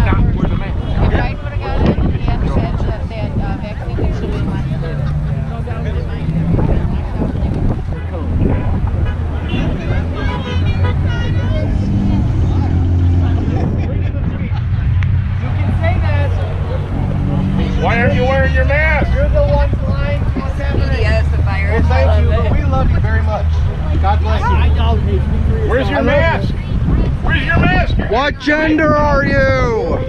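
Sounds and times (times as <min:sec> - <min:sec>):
people talking: 0:00.0 - 0:30.0
traffic rumble: 0:00.0 - 0:30.0.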